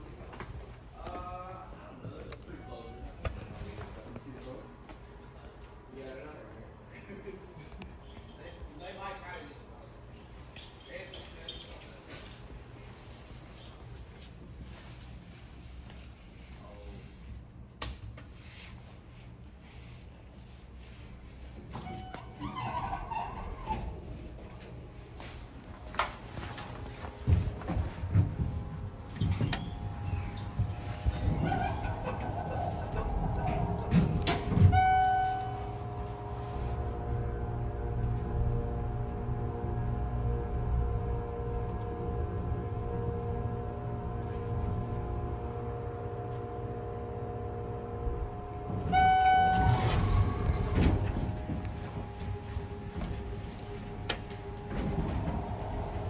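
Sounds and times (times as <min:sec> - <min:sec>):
elevator doors sliding: 0:21.1 - 0:56.0
elevator chime: 0:21.7 - 0:23.4, 0:28.5 - 0:37.4, 0:47.8 - 0:56.0.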